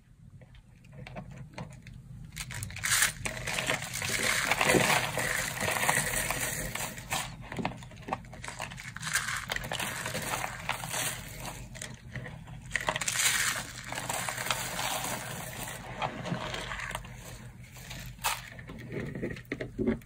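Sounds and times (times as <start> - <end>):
soap shavings crushed by hand: 2.4 - 18.6.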